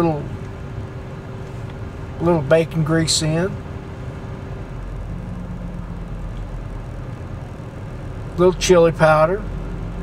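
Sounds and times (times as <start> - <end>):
car engine hum from cabin: 0.0 - 10.0.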